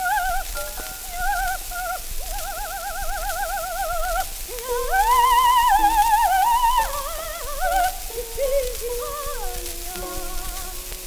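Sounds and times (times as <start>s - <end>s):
record surface hiss: 0.0s - 11.0s
soprano singing trill: 0.0s - 11.0s.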